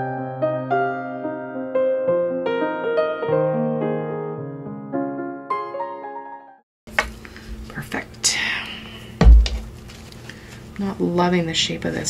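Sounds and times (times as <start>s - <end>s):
low thump: 9.2s - 9.7s
paper napkin rustling: 9.6s - 10.8s.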